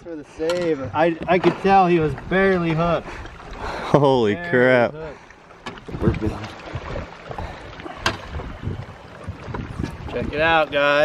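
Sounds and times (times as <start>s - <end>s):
knocks and clicks of handling fish: 5.6s - 8.6s, 9.3s - 10.0s
wind rumbling on microphone: 5.8s - 11.0s.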